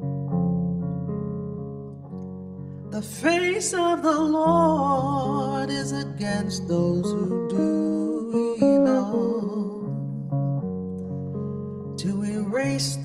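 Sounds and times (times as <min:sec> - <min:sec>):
guitar picking melody: 0:00.0 - 0:13.0.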